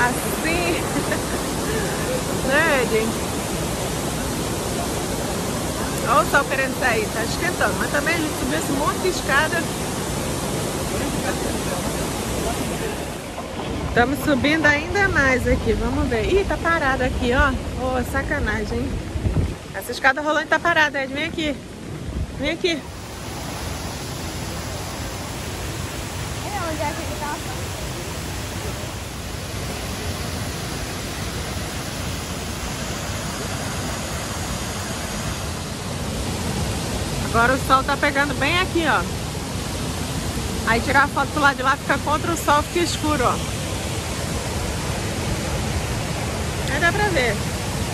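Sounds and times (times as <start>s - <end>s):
fountain water rushing: 0.0s - 47.9s.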